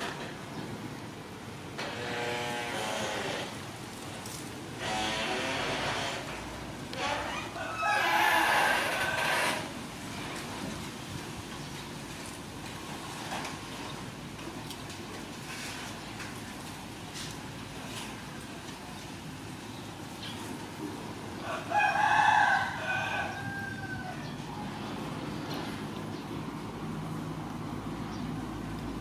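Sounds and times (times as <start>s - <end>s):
rooster crowing: 7.1s - 9.6s, 21.4s - 24.6s.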